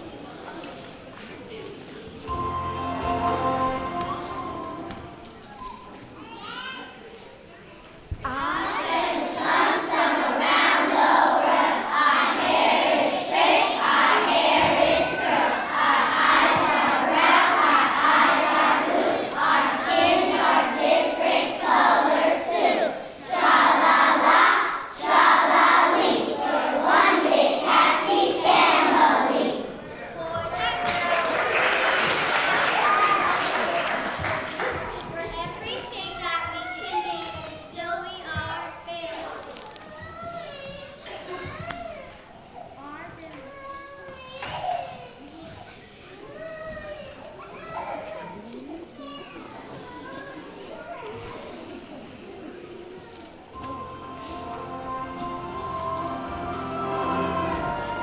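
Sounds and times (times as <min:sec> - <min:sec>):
children's voices chattering: 0:00.0 - 0:58.0
children singing in unison: 0:08.3 - 0:29.8, 0:53.6 - 0:58.0
applause: 0:30.5 - 0:35.3.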